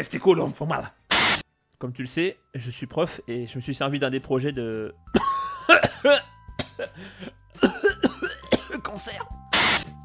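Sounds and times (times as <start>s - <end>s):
person coughing: 5.1s - 7.0s, 7.6s - 9.0s.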